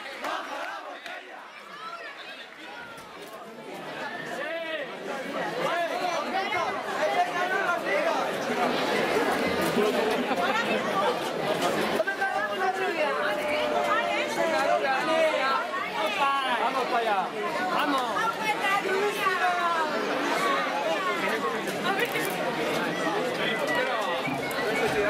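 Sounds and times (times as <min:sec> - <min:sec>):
men chattering: 0:03.4 - 0:25.0.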